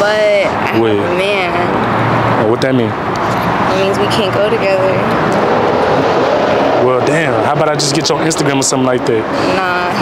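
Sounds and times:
vehicle noise rushing: 0:00.0 - 0:10.0
faint voices: 0:06.8 - 0:10.0.

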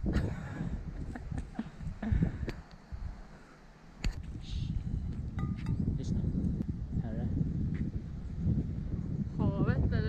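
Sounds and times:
wind buffeting microphone: 0:00.0 - 0:03.3, 0:04.0 - 0:10.0.

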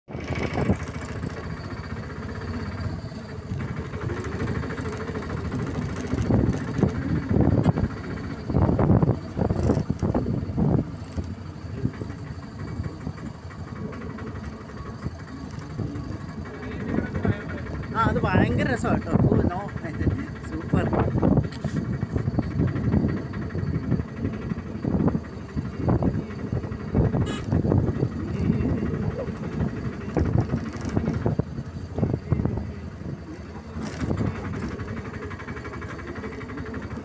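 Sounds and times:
people talking: 0:11.6 - 0:21.9, 0:28.1 - 0:31.2.

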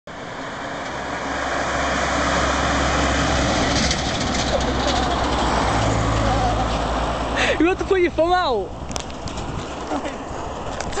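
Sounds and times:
truck engine passing: 0:00.1 - 0:10.7.

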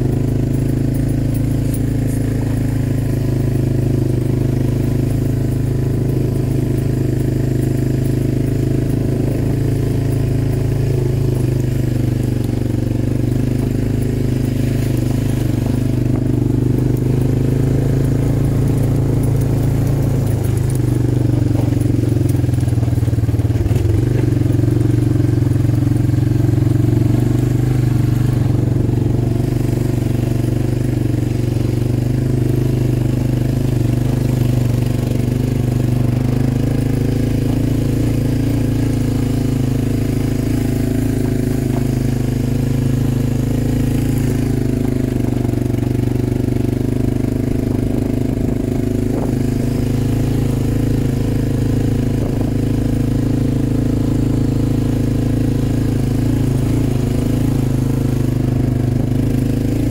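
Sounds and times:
quad bike engine running: 0:00.0 - 0:59.9.

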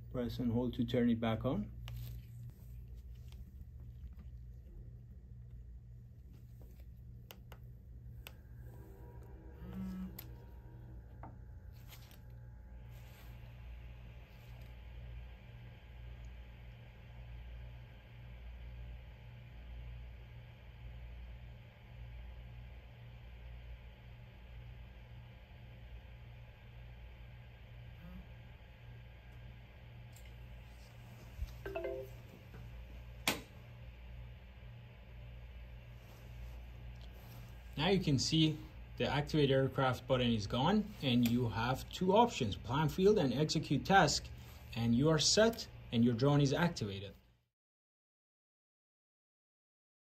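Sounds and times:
low steady hum: 0:00.0 - 0:47.4
low electronic tone: 0:08.1 - 0:13.3, 0:31.6 - 0:32.5
electronic start-up chime: 0:31.7 - 0:32.3.

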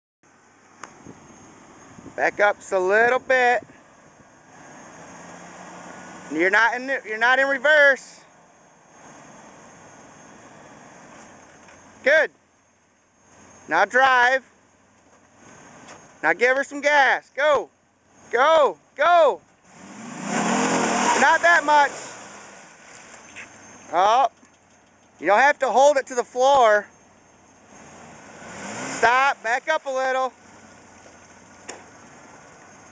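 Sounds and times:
car engine idling faintly: 0:00.3 - 0:32.9.

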